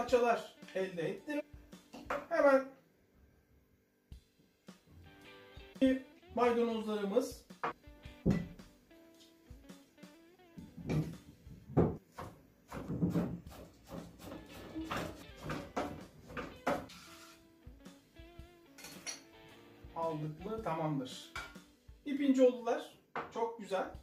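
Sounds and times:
soft guitar music: 0:05.0 - 0:11.9, 0:14.3 - 0:22.1
knife chopping on plastic board: 0:11.8 - 0:16.9.

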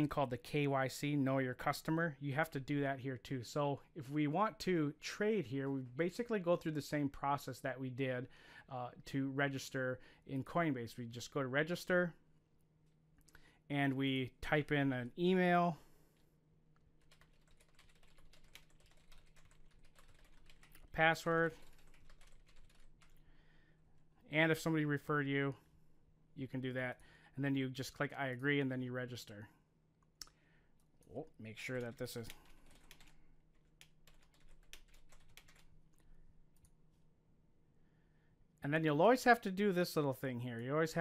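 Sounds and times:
typing on computer keyboard: 0:17.0 - 0:23.2, 0:31.8 - 0:35.7.

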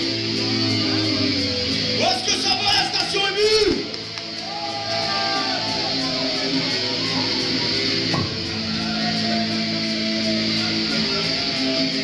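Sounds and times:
drums with cymbal beat: 0:00.0 - 0:12.0
electric guitars holding chords: 0:00.0 - 0:12.0.

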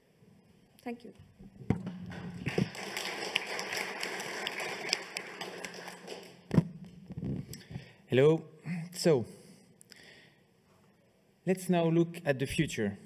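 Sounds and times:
sharp knock on microphone: 0:01.6 - 0:02.2
microphone handling rustling: 0:06.5 - 0:07.8.

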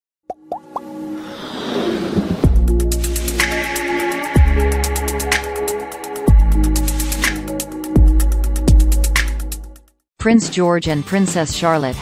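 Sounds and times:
pitch-rising pops: 0:00.3 - 0:02.8
whoosh with held musical tones: 0:01.1 - 0:02.5.

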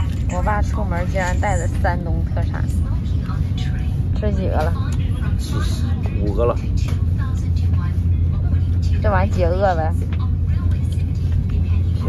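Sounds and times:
train cabin rumble: 0:00.0 - 0:12.0.

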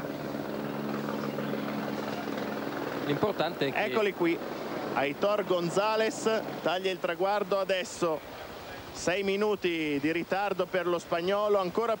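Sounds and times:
engine drone: 0:00.0 - 0:07.0
noisy background: 0:00.0 - 0:12.0.

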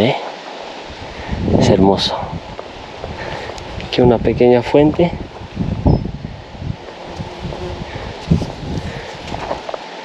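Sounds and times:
wind buffeting microphone: 0:00.8 - 0:09.7.

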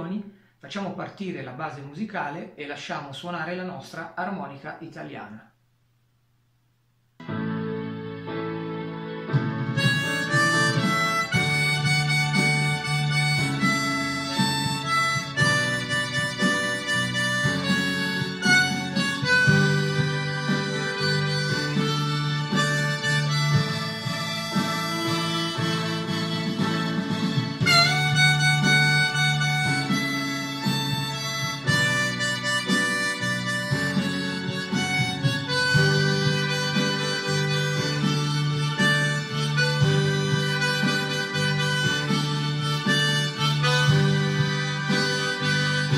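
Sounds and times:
harmonica melody: 0:07.2 - 0:45.9
musical backing track: 0:07.2 - 0:45.9.

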